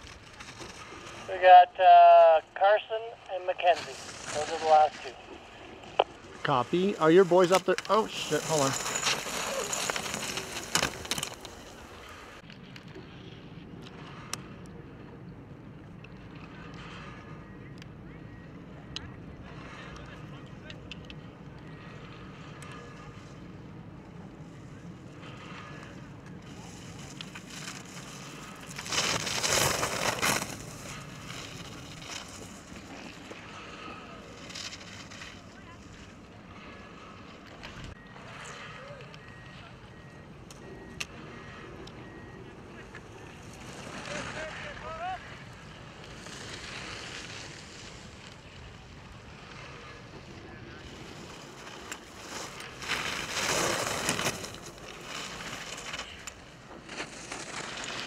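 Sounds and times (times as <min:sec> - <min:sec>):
skis carving and scraping on snow: 0:00.0 - 0:15.0, 0:16.1 - 0:17.5, 0:19.0 - 0:58.0.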